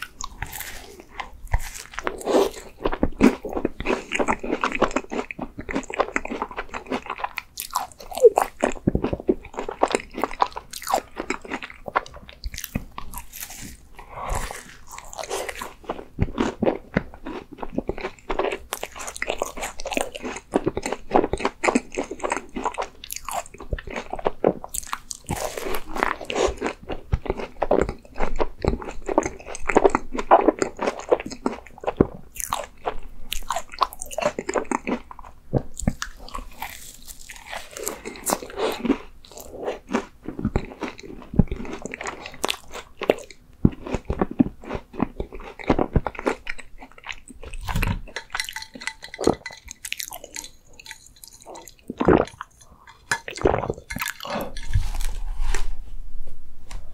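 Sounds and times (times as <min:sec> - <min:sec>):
person chewing close up: 0:00.0 - 0:55.6.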